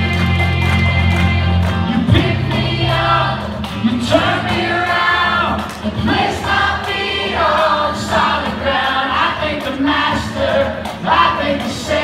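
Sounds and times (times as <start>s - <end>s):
congregation singing with band: 0.0s - 12.0s.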